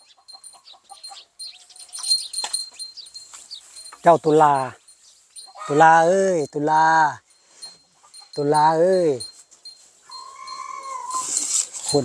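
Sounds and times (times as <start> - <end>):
high drawn-out animal call: 10.1 - 11.7
short hissing rustle: 11.0 - 12.0.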